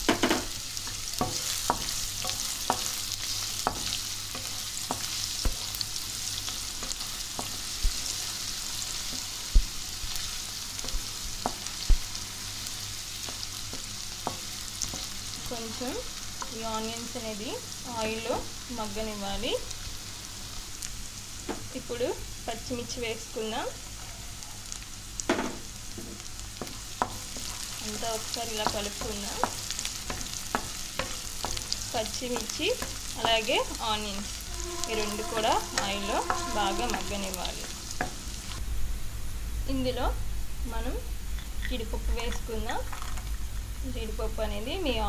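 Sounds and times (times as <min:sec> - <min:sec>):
food sizzling in hot oil: 0:00.0 - 0:45.0
wooden spatula scraping pan: 0:27.0 - 0:38.2.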